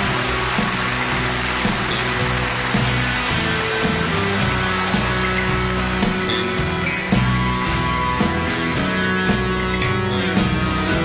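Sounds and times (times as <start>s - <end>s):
band playing ballad instrumental: 0.0s - 11.0s.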